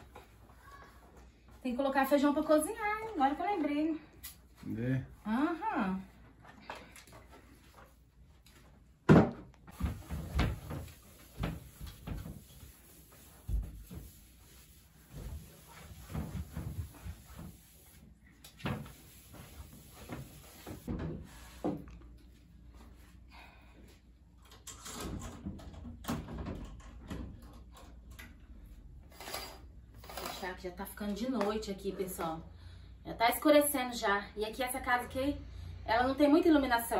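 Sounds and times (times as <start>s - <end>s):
cloth wiping wood: 9.8s - 18.2s, 18.8s - 21.6s
curtains being pulled: 29.1s - 30.6s.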